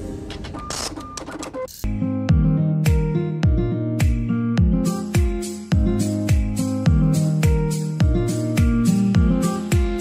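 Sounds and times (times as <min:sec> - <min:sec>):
plucked-string music: 0:01.9 - 0:10.0.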